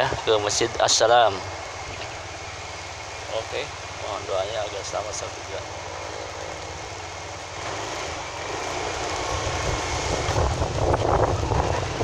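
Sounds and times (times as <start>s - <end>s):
steady rushing noise: 0.0s - 12.0s
small motorcycle engine: 1.2s - 12.0s.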